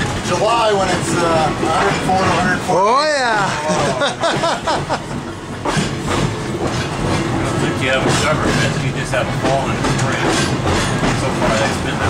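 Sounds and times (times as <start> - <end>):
streetcar wheels clacking over rail joints: 0.0 - 2.8, 3.5 - 12.0.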